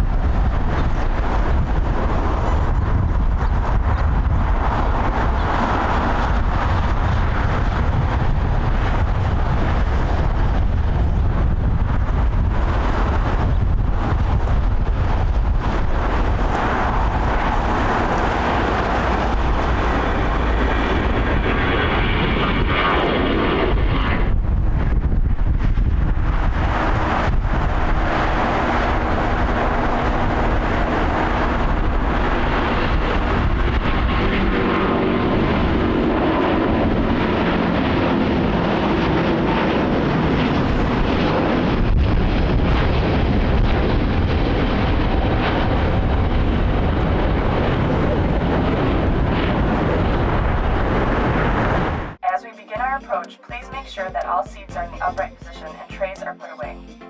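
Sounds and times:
jet engines at takeoff power: 0.0s - 52.2s
high fan whine: 0.0s - 56.2s.

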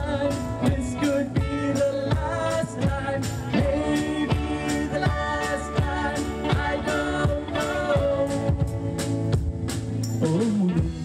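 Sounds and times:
man singing: 0.0s - 8.9s
live rock band playing: 0.0s - 11.0s.

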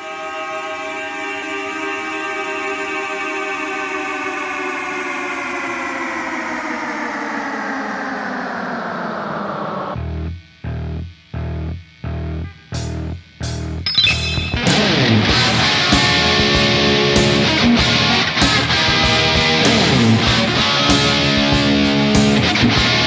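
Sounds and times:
electric bass pulsing: 8.1s - 23.0s.

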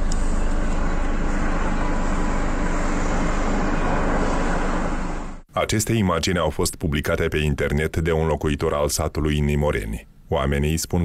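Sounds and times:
low hum: 0.0s - 5.5s
mechanical rumble and hiss: 0.0s - 5.5s.

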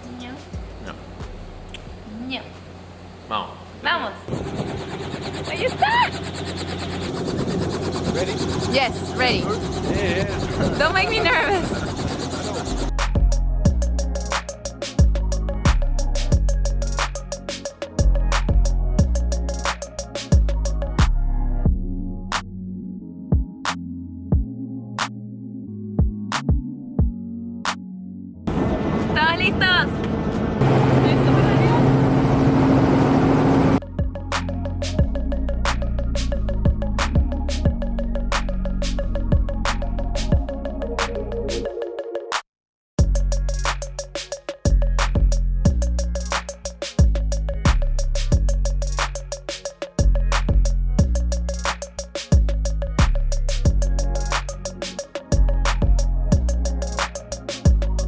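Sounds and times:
helicopter running: 4.3s - 13.1s, 28.5s - 33.8s.

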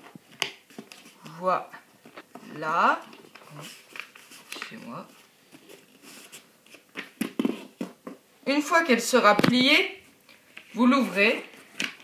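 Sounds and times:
paper folding and rustling: 0.0s - 1.4s, 2.0s - 8.1s.

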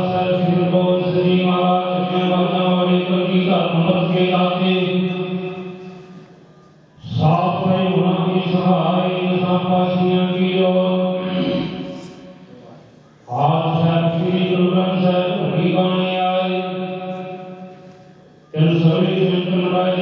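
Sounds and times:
men chanting prayer through microphone: 7.0s - 17.9s, 18.5s - 20.0s.

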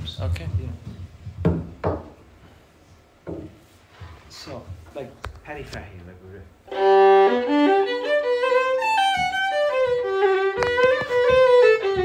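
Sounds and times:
solo fiddle slow tune: 6.7s - 12.0s.

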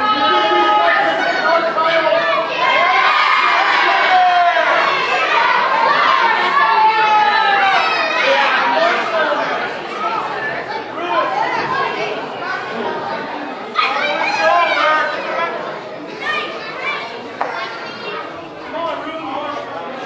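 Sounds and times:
crowd shouting: 0.0s - 19.6s
crowd chattering and calling out: 0.0s - 20.0s.

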